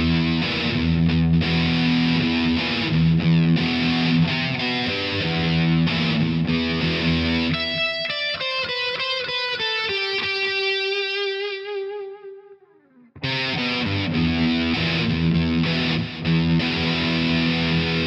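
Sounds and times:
distorted electric guitar riff: 0:00.0 - 0:18.0.

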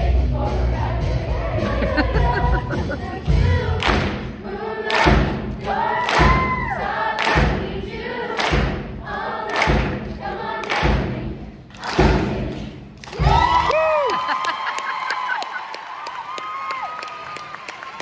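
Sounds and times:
choir singing to backing track: 0:00.0 - 0:13.0.

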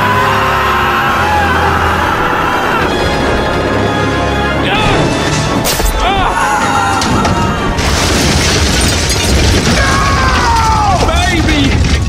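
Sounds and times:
loud explosion roar: 0:00.2 - 0:06.1.

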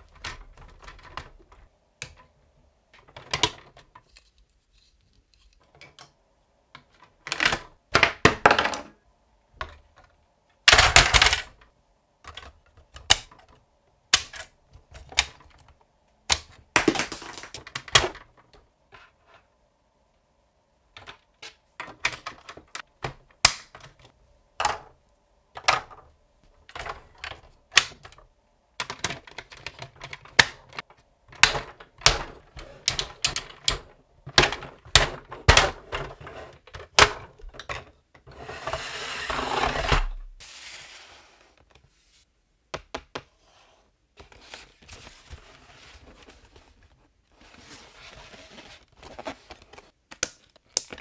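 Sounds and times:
plastic toy parts clicking and rattling: 0:10.7 - 0:11.7, 0:28.8 - 0:37.9.

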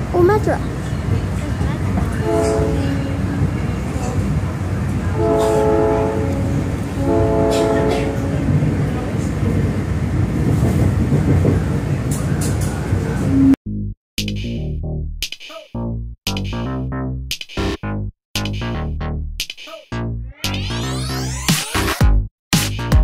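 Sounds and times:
train rumbling: 0:00.0 - 0:13.6
train horn blasts: 0:02.2 - 0:03.8, 0:05.1 - 0:08.7.

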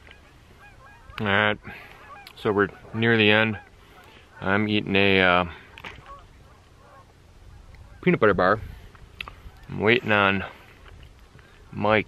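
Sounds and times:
distant bird calls: 0:00.0 - 0:11.9
wind rumble on microphone: 0:05.9 - 0:12.0.

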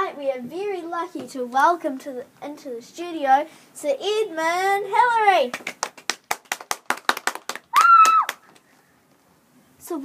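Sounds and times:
crisp hand clapping: 0:05.4 - 0:08.7.

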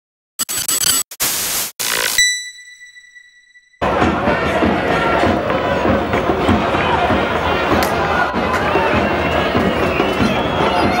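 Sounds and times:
tv static hiss bursts: 0:00.5 - 0:02.2.

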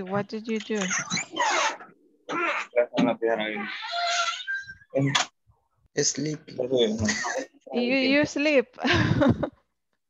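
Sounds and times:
indistinct voices over video call: 0:00.0 - 0:09.0.

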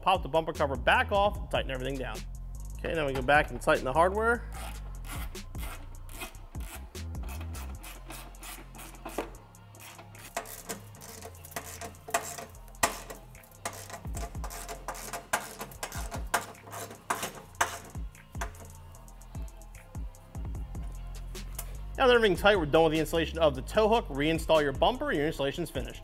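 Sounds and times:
background music: 0:00.0 - 0:26.0
socket ratchet clicking: 0:04.6 - 0:20.2, 0:20.8 - 0:21.8.

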